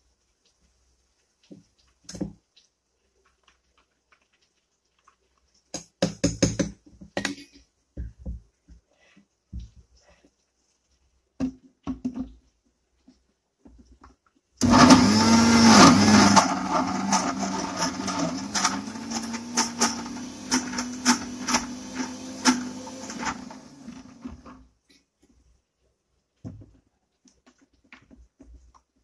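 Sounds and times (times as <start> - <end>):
mixer grinder motor hum: 14.6 - 24.5.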